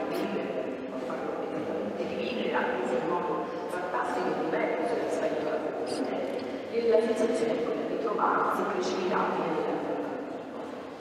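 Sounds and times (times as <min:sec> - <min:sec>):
woman talking into a microphone: 0:00.0 - 0:10.8.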